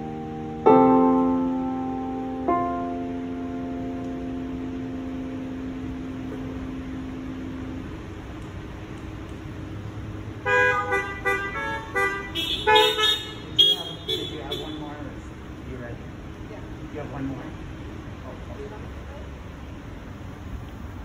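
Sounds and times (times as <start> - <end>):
piano chord ringing: 0.0 - 8.2
car horns honking: 10.4 - 15.4.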